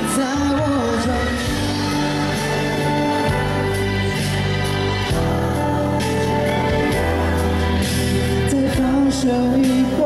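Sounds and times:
band playing pop ballad: 0.0 - 10.0
man singing: 0.0 - 10.0.

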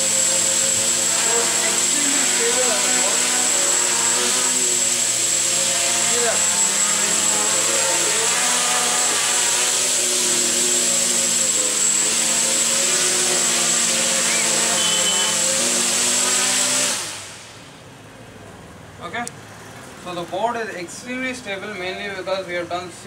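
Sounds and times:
drone propellers buzzing: 0.0 - 18.1.

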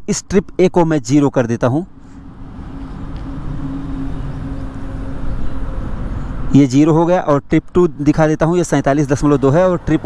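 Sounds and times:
vehicle engine running: 1.9 - 6.9.

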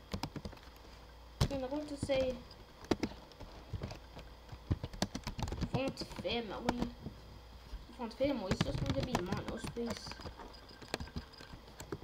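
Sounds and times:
keyboard and mouse clicks: 0.0 - 0.8, 1.4 - 6.9, 8.4 - 12.0
low steady hum: 0.0 - 12.0.

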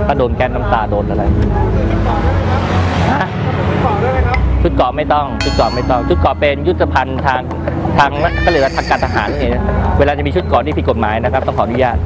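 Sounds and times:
motorbike and car engines rumbling: 0.9 - 5.4
scattered voices: 5.4 - 10.2.

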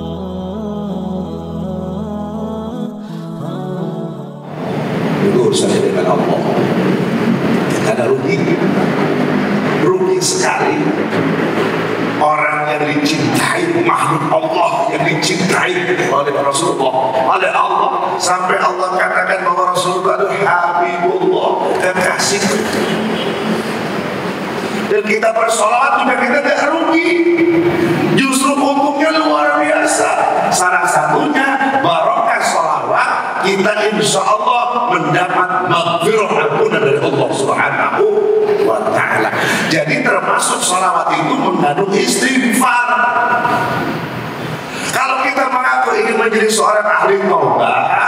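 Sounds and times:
rumbling background noise: 0.0 - 48.0
man talking into a microphone: 5.1 - 6.8, 7.7 - 8.8, 9.8 - 11.0, 12.2 - 23.0, 24.8 - 43.7, 44.8 - 48.0.

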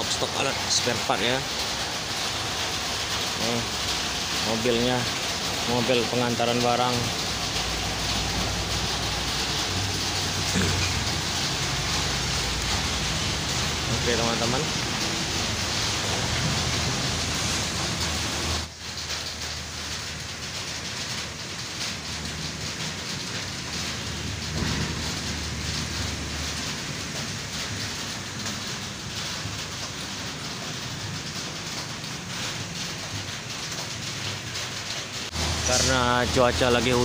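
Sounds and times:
heavy rain falling: 0.0 - 37.0.

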